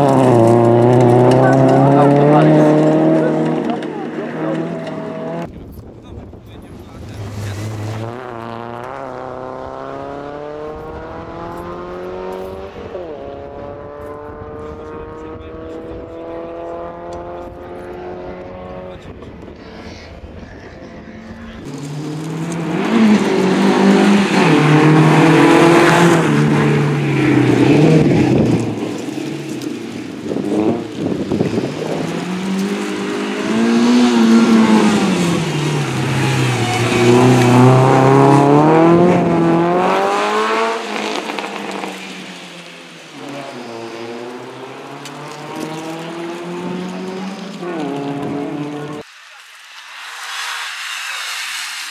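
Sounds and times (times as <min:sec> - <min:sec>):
rally car engine revving: 0:00.0 - 0:05.5, 0:07.0 - 0:19.6, 0:20.8 - 0:49.1.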